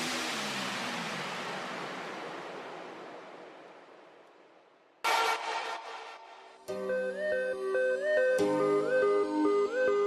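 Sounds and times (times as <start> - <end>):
hiss-like noise sweep: 0.0 - 6.7
electronic dance music: 5.0 - 8.6.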